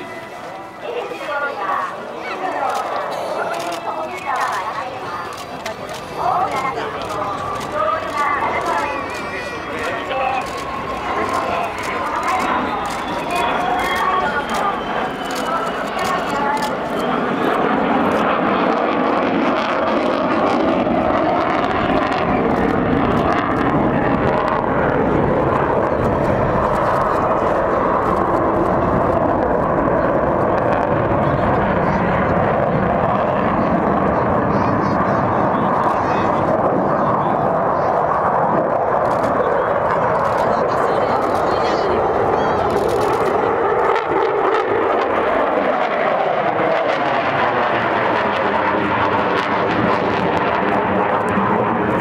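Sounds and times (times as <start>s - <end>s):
fighter jet flying overhead: 0.0s - 52.0s.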